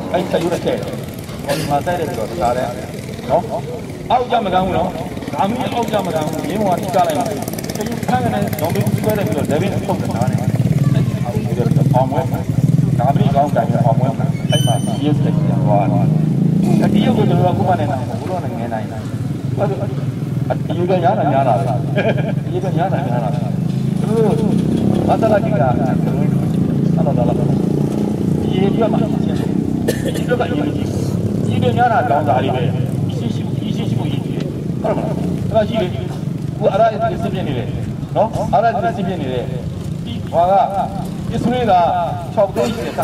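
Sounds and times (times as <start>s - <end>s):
man speaking over loudspeakers: 0.0s - 43.0s.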